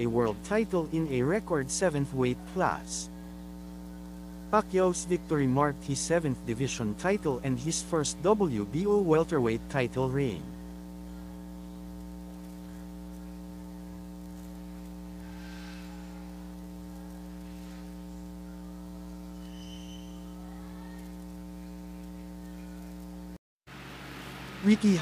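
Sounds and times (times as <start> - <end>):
steady electrical hum: 0.0 - 25.0.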